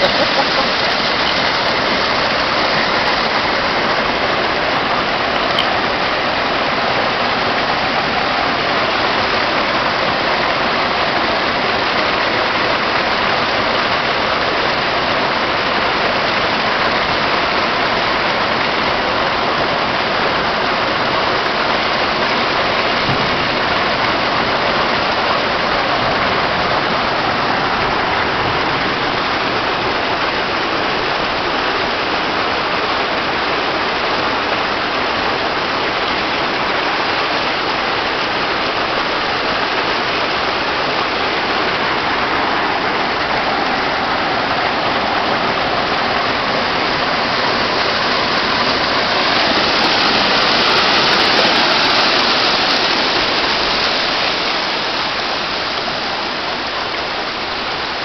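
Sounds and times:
water pouring into pool: 0.0s - 58.0s.

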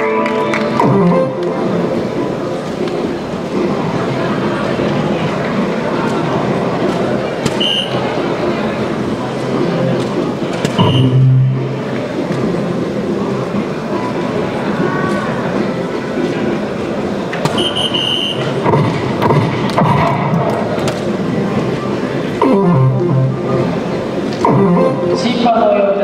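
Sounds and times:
din of chatter: 0.0s - 26.0s
short electronic tones: 10.8s - 11.7s.

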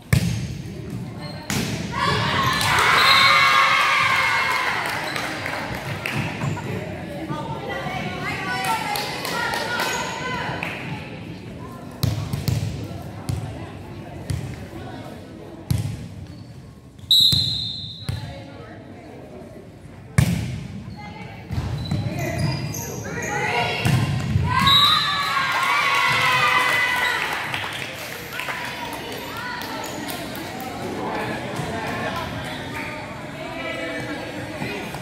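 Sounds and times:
sneakers squeaking on hardwood: 21.5s - 23.5s.

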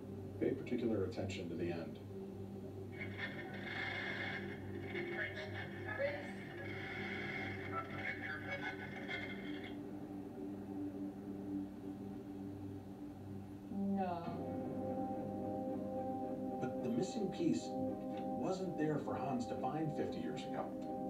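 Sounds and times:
hissy audio playback: 0.0s - 21.0s
steady low hum: 0.0s - 21.0s.

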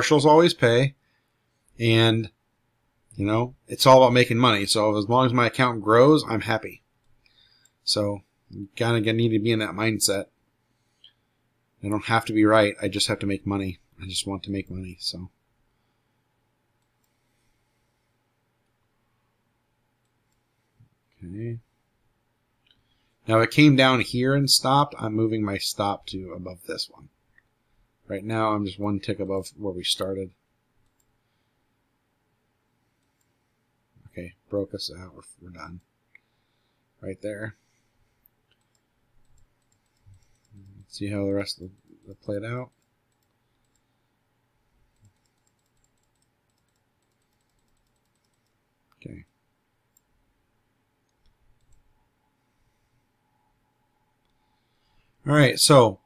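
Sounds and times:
quick computer clicking: 44.9s - 48.6s.

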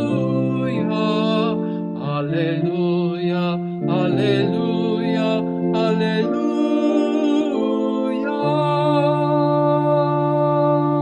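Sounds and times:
chanted sung vocal line: 0.0s - 11.0s
held accompanying chords: 0.0s - 11.0s.

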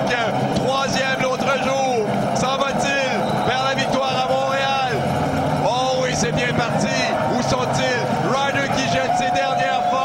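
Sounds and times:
crowd and roadside noise: 0.0s - 10.0s
excited commentator speaking: 0.0s - 10.0s.

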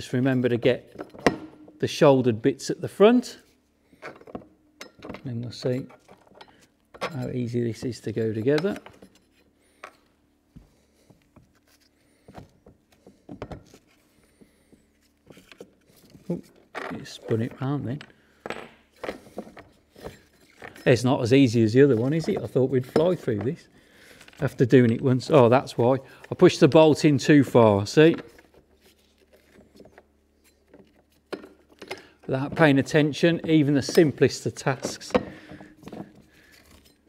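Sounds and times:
light clicks and knocks of metal parts: 4.0s - 10.2s, 11.1s - 27.1s.

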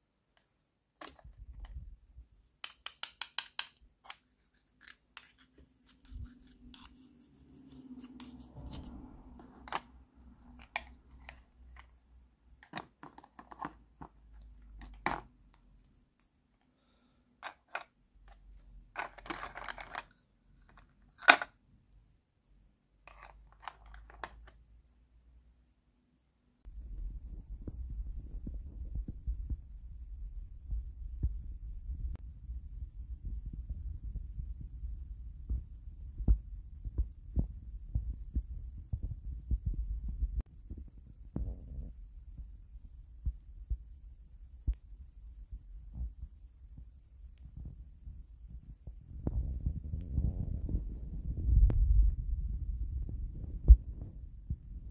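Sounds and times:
small clicks and taps: 2.6s - 4.2s.

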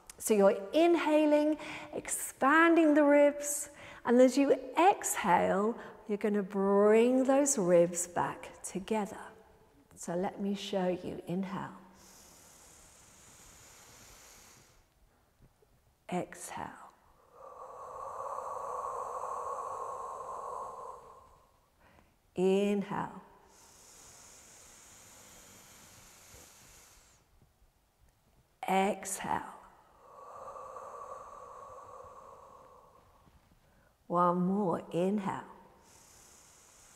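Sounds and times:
woman inhaling through nose: 11.9s - 14.9s, 17.2s - 22.0s, 23.4s - 27.3s, 29.8s - 34.0s, 35.7s - 36.9s
woman exhaling slowly: 12.0s - 14.9s, 17.2s - 22.0s, 23.3s - 27.3s, 29.7s - 33.9s, 35.8s - 36.9s.

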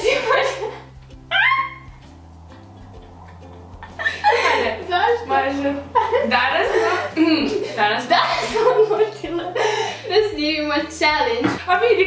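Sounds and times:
soft background music: 0.0s - 12.0s
woman squealing with laughter: 1.3s - 1.9s.

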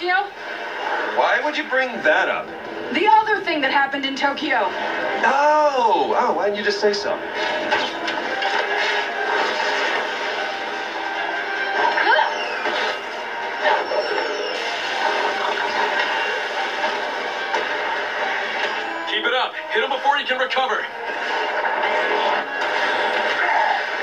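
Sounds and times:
action music from television: 0.0s - 24.0s.

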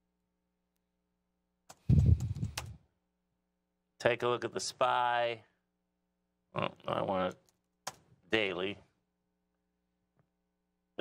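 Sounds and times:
keyboard keys clicking: 1.7s - 2.8s.

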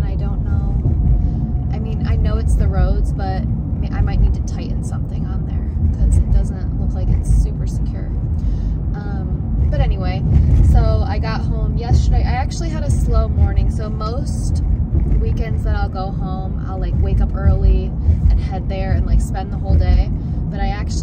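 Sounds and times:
woman talking: 0.0s - 0.9s, 1.7s - 8.2s, 9.0s - 21.0s
car driving rumble: 0.0s - 21.0s.

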